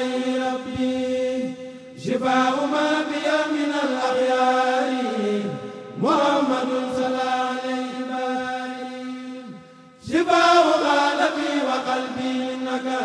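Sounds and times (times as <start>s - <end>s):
men chanting: 0.0s - 13.0s.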